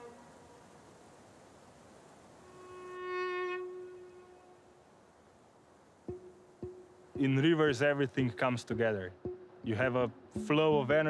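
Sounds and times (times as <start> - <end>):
faint hiss: 0.0 - 11.0
sustained violin note: 2.4 - 4.6.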